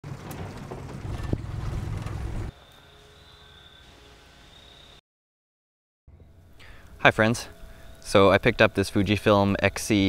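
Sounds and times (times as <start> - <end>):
water and wind noise: 0.0 - 2.5
motorboat engine rumble: 0.1 - 2.5.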